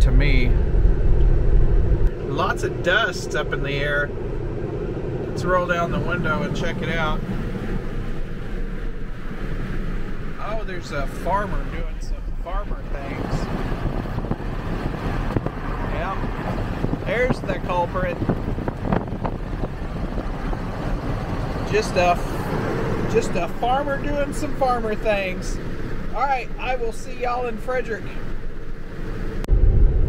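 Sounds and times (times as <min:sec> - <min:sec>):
car wind and road noise: 0:00.0 - 0:30.0.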